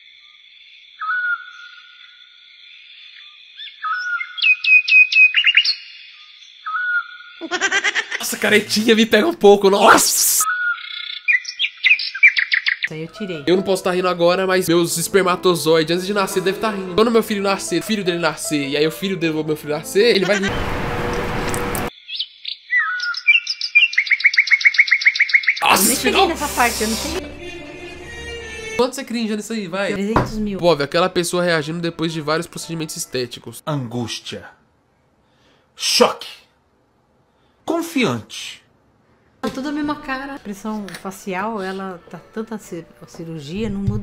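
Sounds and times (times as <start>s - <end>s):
bird repeated sharp chirps: 0.2s - 7.4s, 10.4s - 12.9s, 21.9s - 25.6s
bird whistling: 1.0s - 1.8s, 3.6s - 7.3s, 10.5s - 12.9s, 22.1s - 25.6s.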